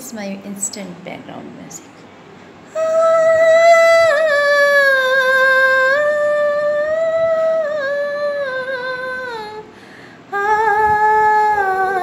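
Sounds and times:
woman singing wordless vocalise: 2.7s - 12.0s.

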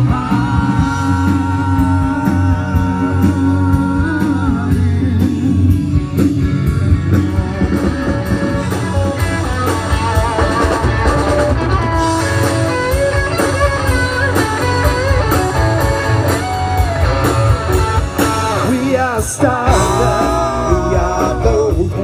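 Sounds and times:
bass guitar: 0.0s - 22.0s
drum kit: 0.0s - 22.0s
electric guitar lead: 0.0s - 22.0s.

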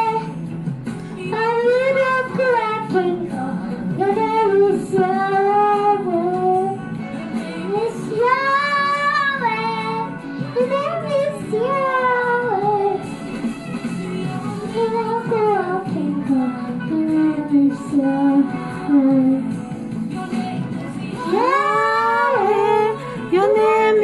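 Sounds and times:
girl singing a worship song: 0.0s - 24.0s.

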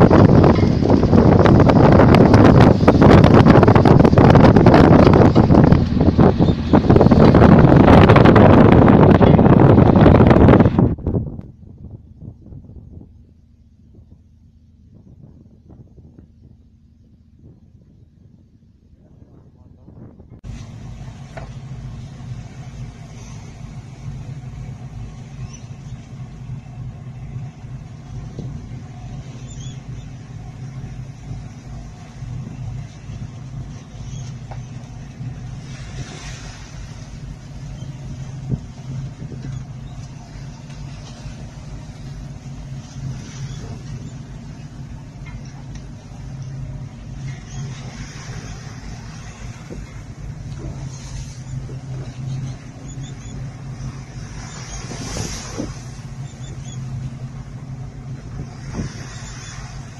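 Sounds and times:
waves splashing against hull: 0.0s - 17.6s, 19.3s - 59.9s
boat engine running: 0.0s - 59.9s.

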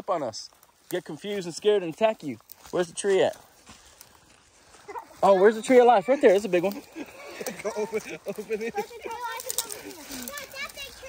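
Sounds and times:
children talking: 4.6s - 11.0s.

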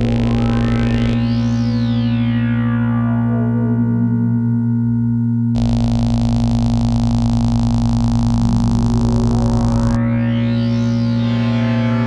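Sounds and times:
tone sweeping upward: 0.0s - 5.3s, 9.0s - 12.0s
low synthesizer drone: 0.0s - 12.0s
pulsing bass: 0.0s - 12.0s.

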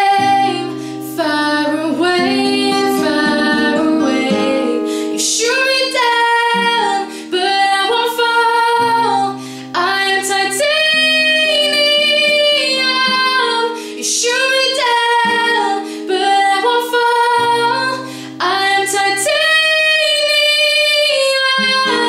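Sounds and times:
acoustic guitar: 0.0s - 22.0s
woman singing: 0.0s - 22.0s.

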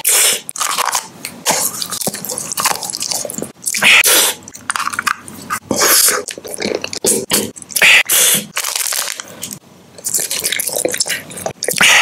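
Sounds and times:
crunchy chewing of a snack: 0.0s - 12.0s.

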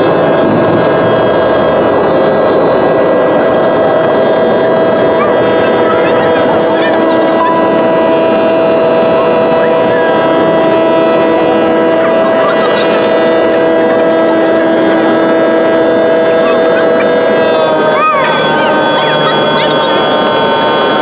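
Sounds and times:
jet engines droning in cabin: 0.0s - 21.0s.

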